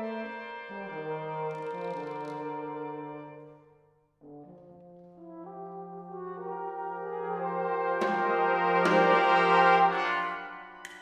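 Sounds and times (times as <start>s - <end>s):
brass band playing chords: 5.3s - 11.0s.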